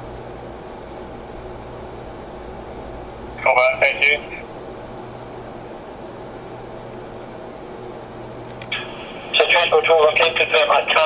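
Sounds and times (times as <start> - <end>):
radio scanner hiss and hum: 2.7 - 7.3, 8.0 - 11.0
radio transmission burst: 8.6 - 11.0.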